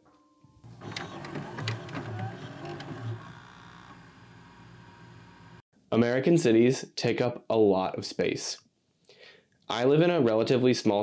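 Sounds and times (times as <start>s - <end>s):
musical sting of clicks and pulses: 0.6s - 5.6s.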